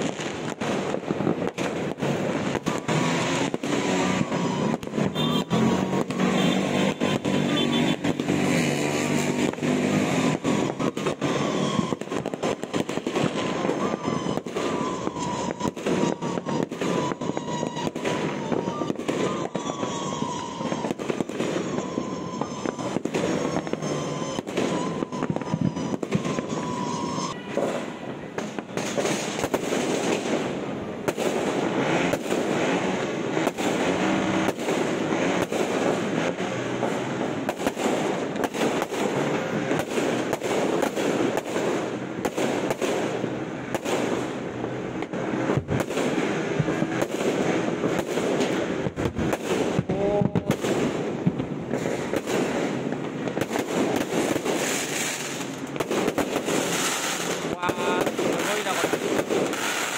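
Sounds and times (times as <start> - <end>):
fireworks and firecrackers crackling: 0.0 - 59.9
wavering whistle tones: 13.4 - 27.4.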